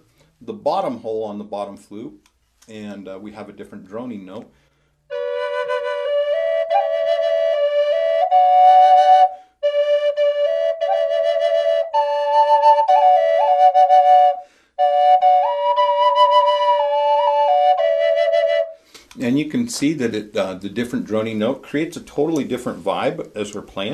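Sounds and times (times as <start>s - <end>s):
flute drone note: 5.1s - 18.8s
slow flute melody: 5.1s - 18.9s.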